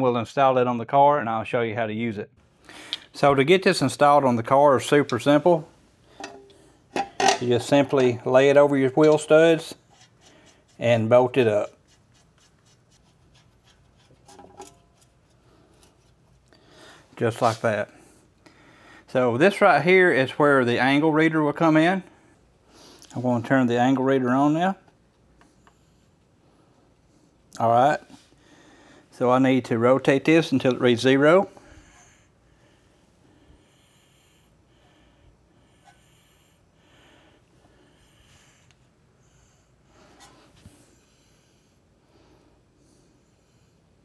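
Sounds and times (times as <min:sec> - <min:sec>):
faint breathing: 0:02.6 - 0:03.1, 0:09.9 - 0:10.8, 0:15.4 - 0:17.2, 0:17.8 - 0:19.2, 0:28.1 - 0:29.2, 0:31.5 - 0:44.0
faint metallic clicks and scraping: 0:06.2 - 0:08.2, 0:09.0 - 0:10.9, 0:14.1 - 0:16.5.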